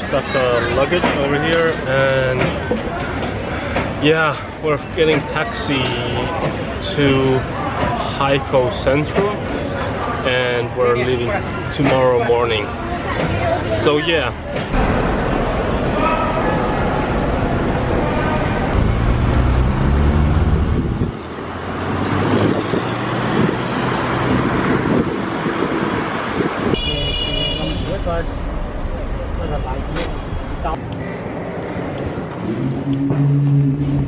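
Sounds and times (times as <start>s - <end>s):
city road traffic: 0.0s - 34.0s.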